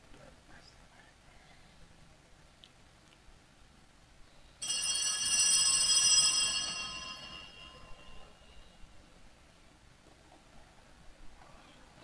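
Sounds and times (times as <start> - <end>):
bell-like ringing: 4.6 - 9.0.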